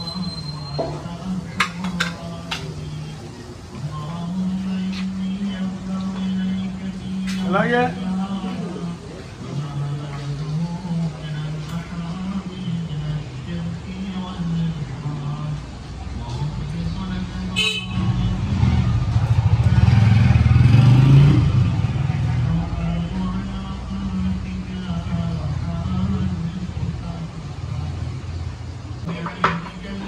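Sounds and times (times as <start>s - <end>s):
vehicle engine passing: 2.2s - 29.0s.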